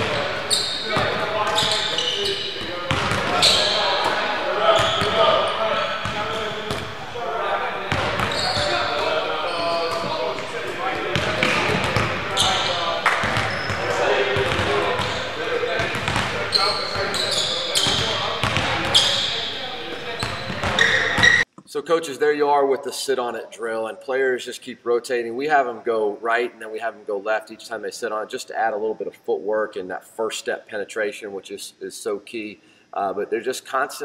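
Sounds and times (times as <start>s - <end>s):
basketballs bouncing on hardwood: 0.0s - 7.0s, 7.8s - 21.4s
man speaking: 0.0s - 21.0s, 21.7s - 34.0s
sneakers squeaking: 0.0s - 21.5s
players' voices: 0.0s - 24.4s.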